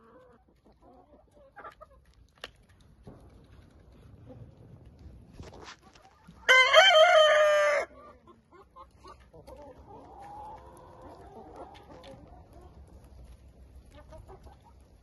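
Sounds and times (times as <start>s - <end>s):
hens clucking: 0.0s - 2.2s, 7.2s - 15.0s
rooster crowing: 6.5s - 7.9s.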